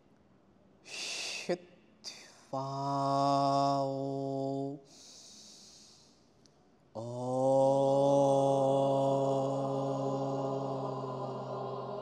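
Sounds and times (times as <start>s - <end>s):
person chanting om: 2.4s - 6.0s, 7.0s - 12.0s.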